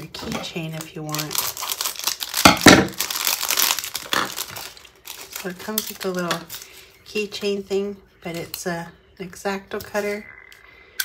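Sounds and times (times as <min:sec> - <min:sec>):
plastic bag crinkling: 0:00.0 - 0:07.4
scissors cutting plastic: 0:00.1 - 0:06.6.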